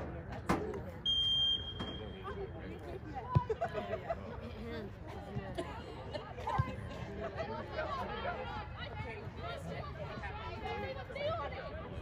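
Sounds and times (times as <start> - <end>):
referee's whistle blast: 1.1 - 2.2.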